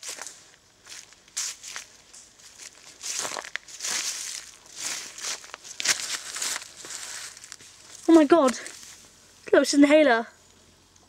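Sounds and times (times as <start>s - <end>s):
footsteps crunching dead leaves: 0.0s - 9.2s.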